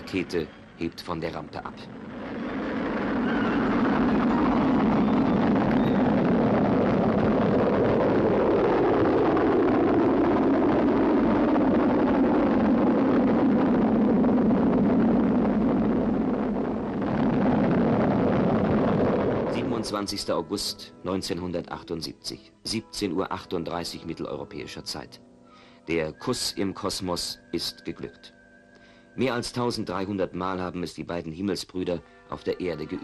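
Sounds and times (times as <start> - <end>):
rocket exhaust rumble: 0.0 - 21.9.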